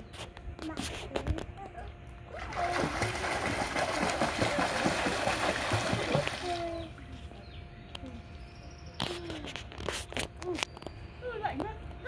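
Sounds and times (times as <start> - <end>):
pool water splashed by hand: 2.3 - 6.8.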